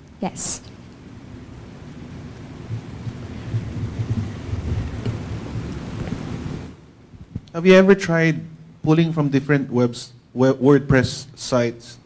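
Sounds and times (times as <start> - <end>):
microphone handling rumble: 2.6 - 7.8.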